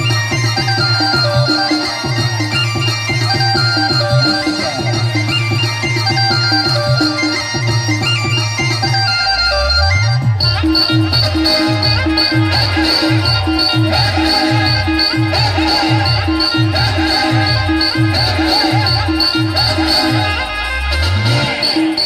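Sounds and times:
loud dance band music: 0:00.0 - 0:22.0
driving drum beat: 0:10.1 - 0:22.0.

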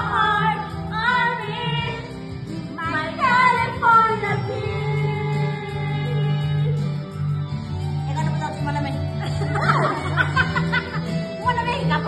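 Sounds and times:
music with bass line: 0:00.0 - 0:12.0
women laughing: 0:09.2 - 0:11.9.

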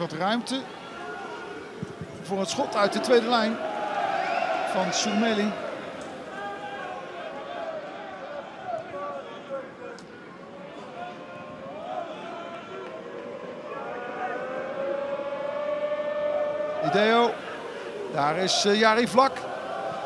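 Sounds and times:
crowd noise: 0:00.0 - 0:20.0
crowd singing a chant: 0:13.0 - 0:20.0.

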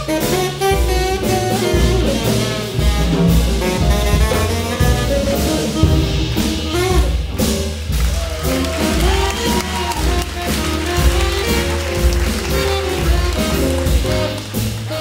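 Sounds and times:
jazz big band playing: 0:00.0 - 0:15.0.

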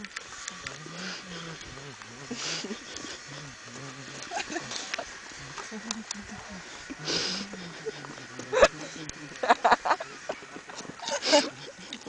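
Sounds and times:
man making wordless vocal sounds: 0:05.4 - 0:09.5.

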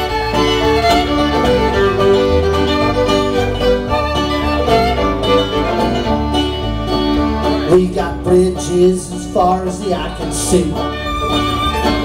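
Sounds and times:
fiddle melody: 0:00.0 - 0:12.0
low bass line: 0:00.0 - 0:12.0
mandolin: 0:00.0 - 0:12.0
picked banjo: 0:00.0 - 0:12.0
strummed acoustic guitar: 0:00.0 - 0:12.0.

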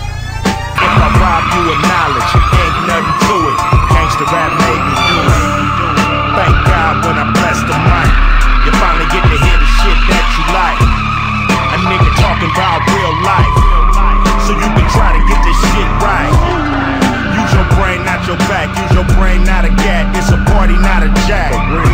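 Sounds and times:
hip-hop music with heavy beat: 0:00.0 - 0:21.9
tyres squealing: 0:00.3 - 0:21.9.

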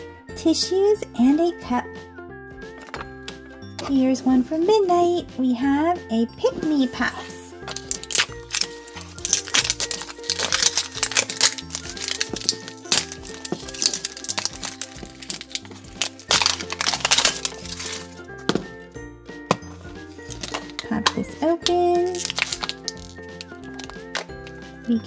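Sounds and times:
background music: 0:00.0 - 0:25.0
plastic wrapping crinkling and tearing: 0:07.7 - 0:18.5, 0:20.1 - 0:24.6.

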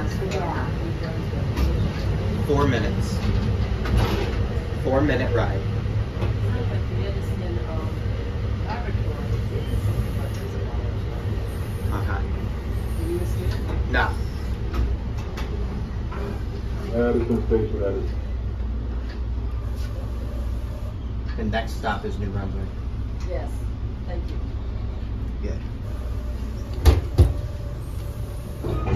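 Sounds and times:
train coach low rumble: 0:00.0 - 0:28.9
sliding train door: 0:03.1 - 0:04.7, 0:25.9 - 0:28.9.

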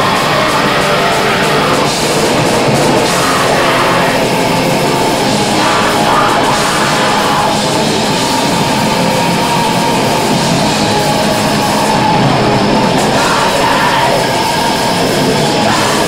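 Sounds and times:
bass guitar: 0:00.0 - 0:16.0
distorted electric guitar: 0:00.0 - 0:16.0
drums: 0:00.0 - 0:16.0.

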